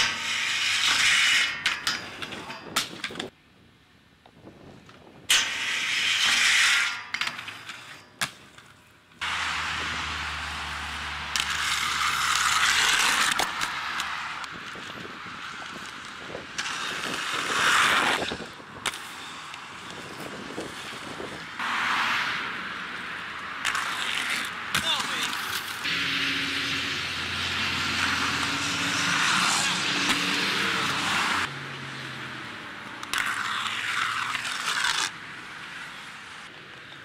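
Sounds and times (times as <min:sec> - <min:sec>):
rough scraping noise: 0:00.0 - 0:03.3, 0:05.3 - 0:31.5, 0:32.8 - 0:36.5
skates grinding on metal handrail: 0:00.0 - 0:03.3, 0:05.1 - 0:26.1, 0:27.7 - 0:31.5, 0:32.8 - 0:36.4.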